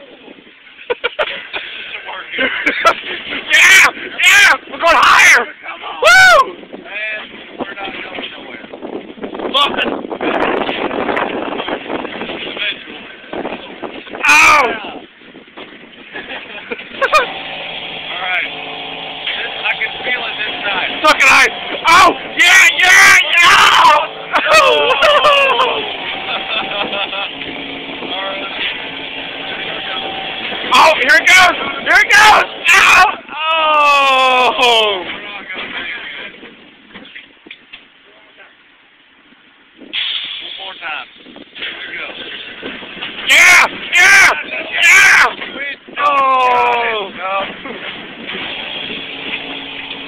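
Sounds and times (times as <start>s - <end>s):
fairground ride running: 0.0s - 50.0s
distant voices: 1.3s - 38.7s, 39.8s - 50.0s
person whooping and yelling: 5.9s - 6.6s, 21.8s - 26.0s, 32.0s - 35.0s, 46.0s - 47.1s
steady hum: 16.0s - 35.0s
loud voice: 20.8s - 25.9s, 30.7s - 35.0s, 43.3s - 45.4s, 46.0s - 47.1s.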